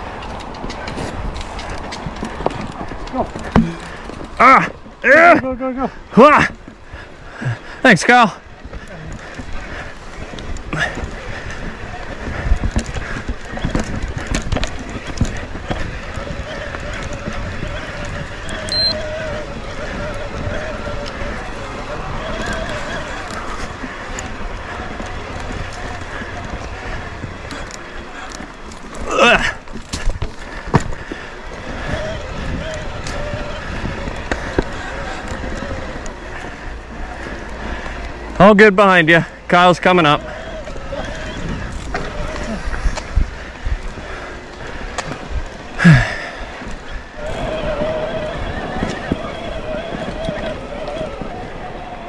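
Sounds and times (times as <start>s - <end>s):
bike clicks and rattles: 0.0s - 52.0s
tyre and wind noise: 0.0s - 52.0s.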